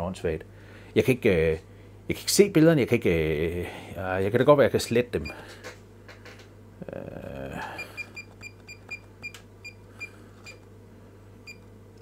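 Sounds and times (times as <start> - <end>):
multimeter key beeps: 7.8 - 10.6, 11.4 - 11.7.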